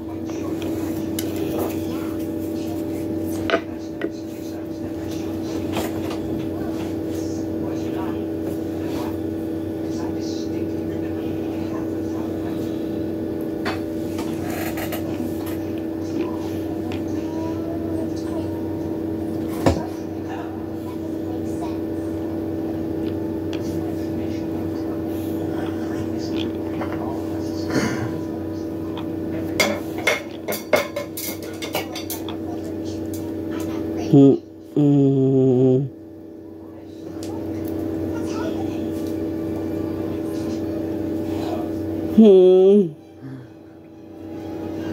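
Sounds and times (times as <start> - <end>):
steady motor hum: 0.0 - 44.9.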